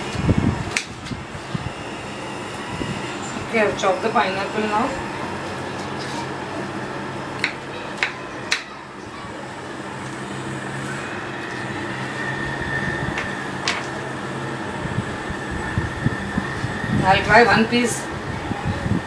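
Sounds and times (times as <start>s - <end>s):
low mechanical hum: 0.0s - 19.0s.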